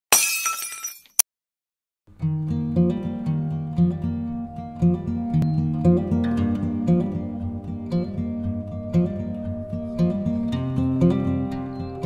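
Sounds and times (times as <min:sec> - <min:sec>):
glass shattering: 0:00.1 - 0:01.2.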